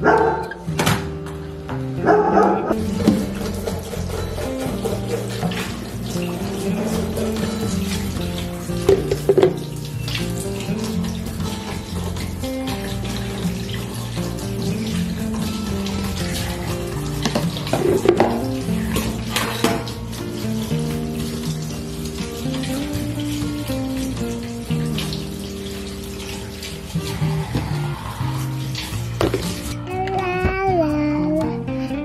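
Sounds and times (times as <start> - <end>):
background music: 0.0 - 32.0
plastic containers being rinsed: 2.7 - 30.2
tap running into steel sink: 2.8 - 26.8, 28.8 - 30.6.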